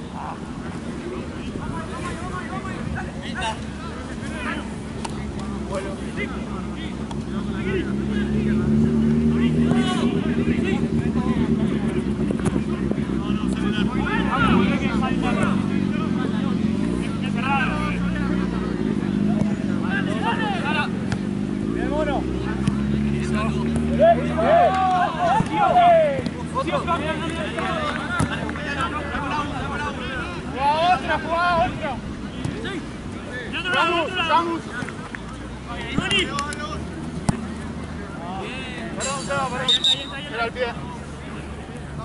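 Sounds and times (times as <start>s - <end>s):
motor traffic passing: 0.0s - 42.0s
players shouting: 1.0s - 42.0s.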